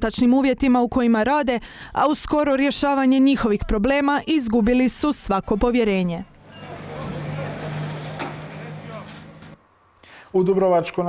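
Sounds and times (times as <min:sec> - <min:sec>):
street and market noise: 0:03.4 - 0:09.6
bus engine hum: 0:06.2 - 0:09.7
indistinct voices: 0:06.3 - 0:09.6.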